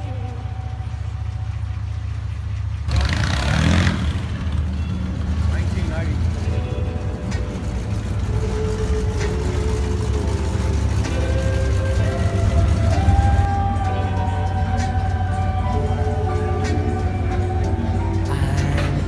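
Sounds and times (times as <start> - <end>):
car engines rumbling past: 0.0 - 19.0.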